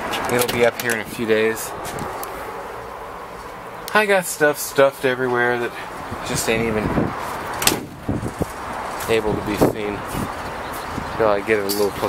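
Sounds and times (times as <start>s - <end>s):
vehicle door clunk: 7.5s - 8.0s.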